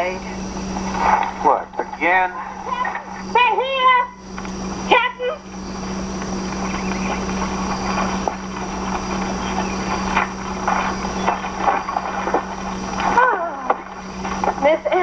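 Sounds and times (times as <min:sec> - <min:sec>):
buggy wheel noise: 0:00.0 - 0:15.0
steady hiss and low hum: 0:00.0 - 0:15.0
hooves clopping: 0:05.4 - 0:15.0.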